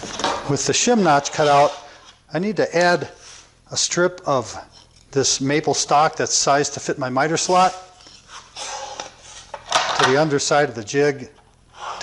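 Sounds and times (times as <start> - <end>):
boards scraping on saw table: 1.2 - 2.1.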